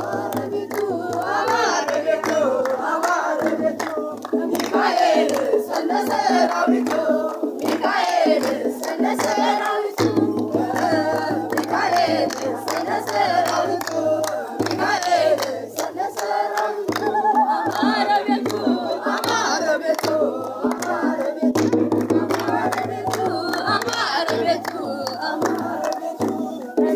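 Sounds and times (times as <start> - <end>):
crowd singing a hymn: 0.0 - 26.9
rhythmic hand clapping: 0.0 - 26.9.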